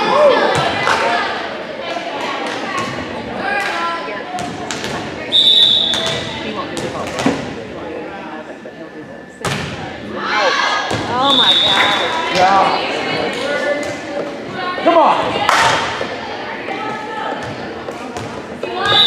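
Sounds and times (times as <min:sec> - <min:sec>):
spectators shouting and cheering: 0:00.0 - 0:03.7, 0:10.1 - 0:13.7
referee's whistle blast: 0:05.3 - 0:06.2, 0:11.2 - 0:12.2
volleyball thumps: 0:05.8 - 0:07.6.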